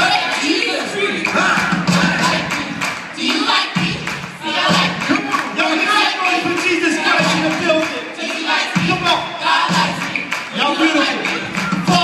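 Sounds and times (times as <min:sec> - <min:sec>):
audience noise: 0:00.0 - 0:12.0
choir singing over band: 0:00.0 - 0:12.0.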